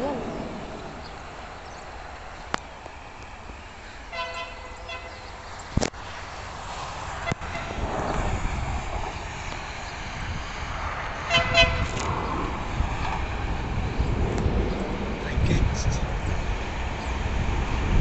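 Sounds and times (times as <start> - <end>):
low train rumble: 0.0 - 18.0
train horn blasts: 4.1 - 5.3, 7.2 - 7.9, 11.2 - 12.0.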